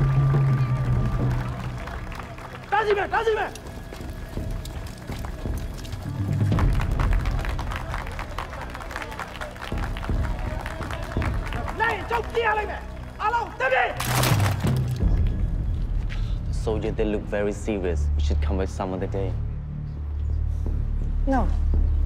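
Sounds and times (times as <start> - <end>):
shouted commands and voices: 2.6 - 3.6, 10.2 - 14.0.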